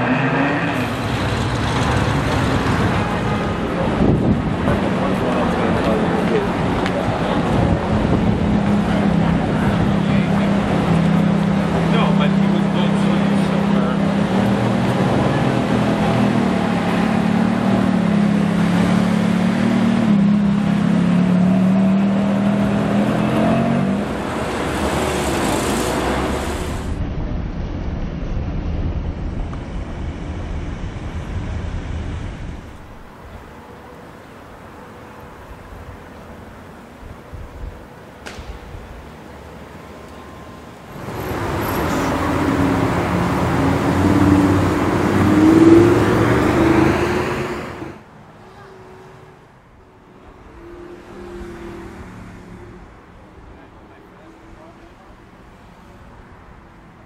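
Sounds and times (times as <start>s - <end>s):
traffic noise: 0.0s - 57.0s.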